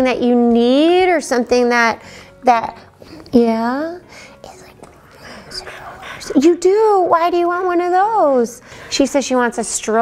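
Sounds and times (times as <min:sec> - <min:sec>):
person whispering: 0:04.4 - 0:06.4.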